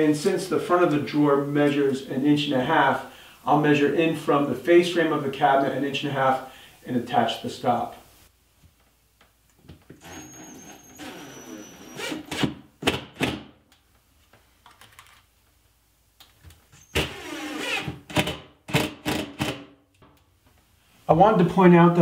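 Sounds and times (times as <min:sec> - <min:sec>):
cordless drill driving screws: 0:10.0 - 0:12.5, 0:17.0 - 0:19.6.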